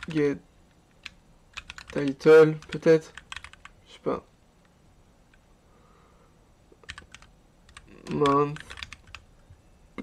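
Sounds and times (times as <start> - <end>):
computer keyboard typing: 0.0 - 0.3, 0.9 - 3.8, 6.8 - 9.4.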